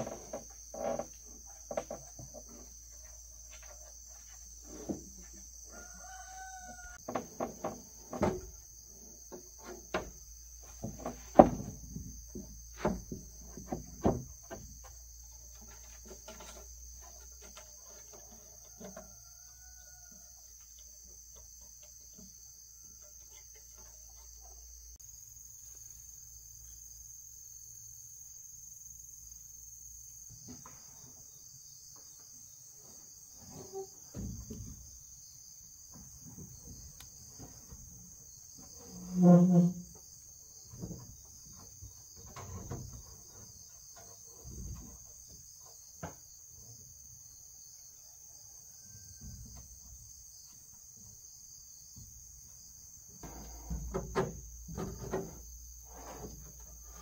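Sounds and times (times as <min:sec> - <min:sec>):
knocks and scrapes of roofing sheets: 0:00.0 - 0:20.1, 0:32.1 - 0:35.0, 0:35.8 - 0:46.8, 0:53.2 - 0:57.0
insects droning: 0:00.0 - 0:57.0.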